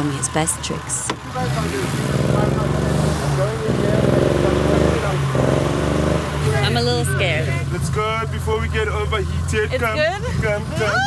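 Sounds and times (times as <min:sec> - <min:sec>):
car engine idling: 0:00.0 - 0:11.0
voices: 0:00.0 - 0:11.0.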